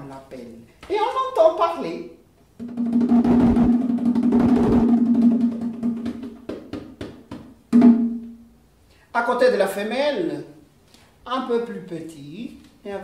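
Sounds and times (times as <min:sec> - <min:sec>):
bongo drum roll and strokes: 0:02.6 - 0:08.2.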